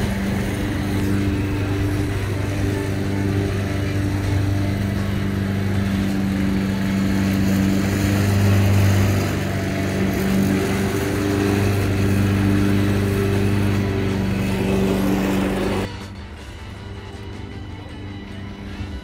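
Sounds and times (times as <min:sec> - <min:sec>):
lawn mower engine running: 0:00.0 - 0:19.0.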